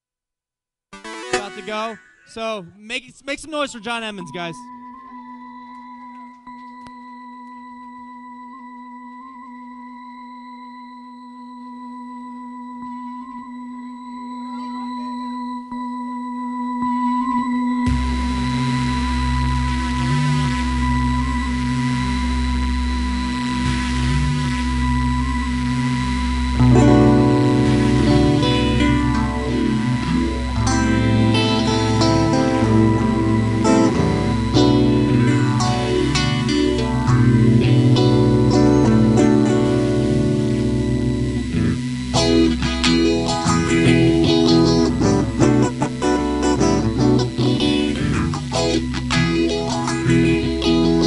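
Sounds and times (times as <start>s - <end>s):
electric guitar sustained note: 10.8s - 51.0s
beat with deep low pulse: 17.9s - 51.0s.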